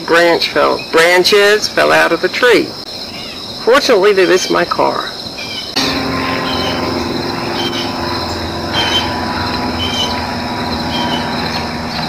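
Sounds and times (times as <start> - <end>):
insects chirring: 0.0 - 12.0
low mechanical hum: 5.5 - 12.0.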